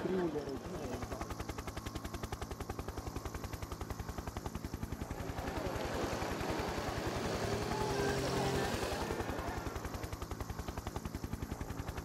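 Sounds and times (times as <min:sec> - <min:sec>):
helicopter rotor chop: 0:00.0 - 0:12.0
steady engine hum: 0:00.0 - 0:12.0.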